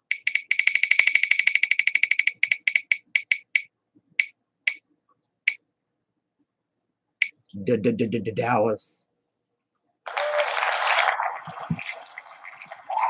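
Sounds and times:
spinning wheel ticking: 0:00.0 - 0:04.8.

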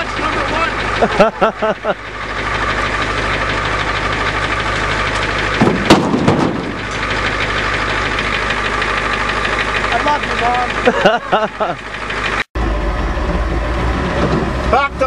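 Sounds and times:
vehicle engine running: 0:00.0 - 0:15.0.

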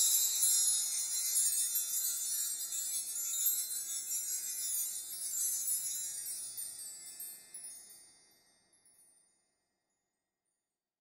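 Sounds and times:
high shimmering chimes: 0:00.0 - 0:09.6.

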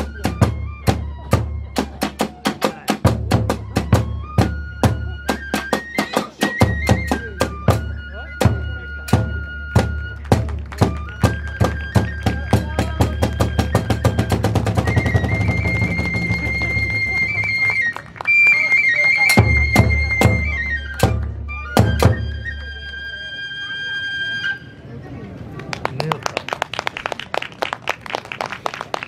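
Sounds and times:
taiko drum strokes and roll: 0:00.0 - 0:18.0, 0:19.2 - 0:22.8
flute holding high notes: 0:03.5 - 0:24.9.

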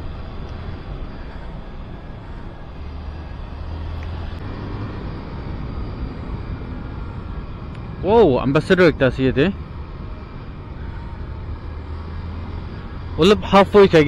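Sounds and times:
motor scooter engine hum: 0:00.0 - 0:14.0
road and wind noise: 0:00.0 - 0:14.0.

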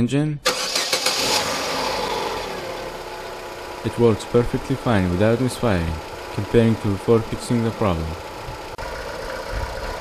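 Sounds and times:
car engine idling: 0:00.5 - 0:10.0.

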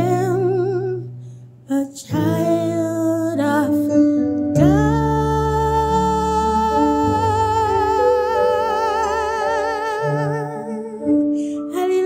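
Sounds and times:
woman singing with vibrato: 0:00.0 - 0:01.1, 0:01.7 - 0:12.0.

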